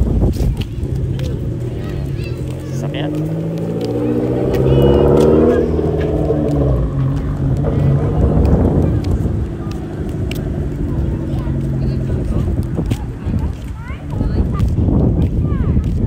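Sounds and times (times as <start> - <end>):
car engine passing slowly: 0.0 - 15.6
voices: 0.0 - 16.0.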